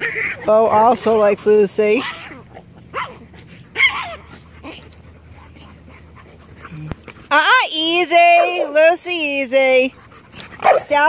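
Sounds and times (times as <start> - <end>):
dogs yipping: 0.0 - 11.0.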